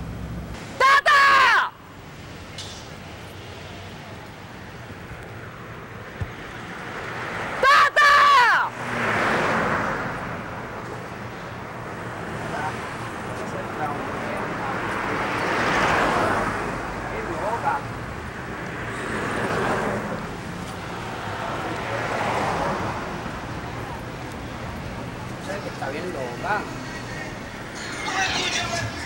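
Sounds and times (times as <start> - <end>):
street traffic passing: 0.0 - 29.0
woman screaming: 0.8 - 1.8, 7.6 - 8.7.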